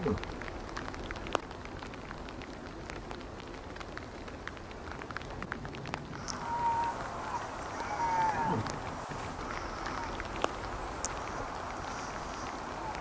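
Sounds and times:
faint ticking and crackling: 0:00.0 - 0:13.0
low hiss: 0:00.0 - 0:13.0
moose high whining call: 0:06.2 - 0:10.5, 0:11.1 - 0:13.0.

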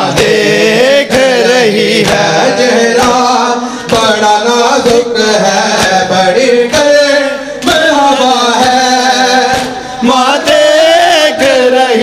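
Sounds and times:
man chanting: 0:00.0 - 0:12.0
chest beating slaps: 0:09.5 - 0:10.0.

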